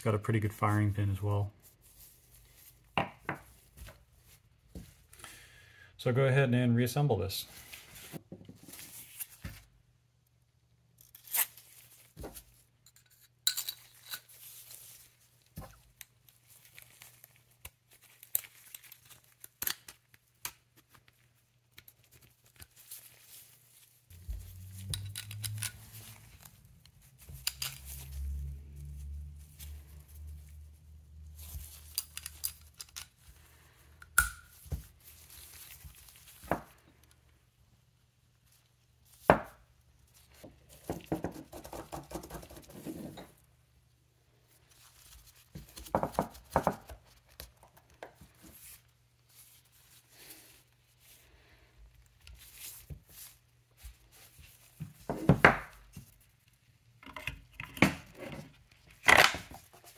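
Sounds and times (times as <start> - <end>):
glove rubbing: 0.5 - 5.2, 14.2 - 33.9, 34.5 - 37.3.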